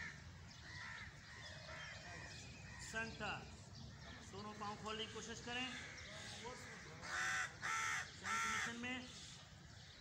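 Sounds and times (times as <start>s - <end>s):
crows cawing: 0.0s - 2.1s, 5.7s - 8.8s.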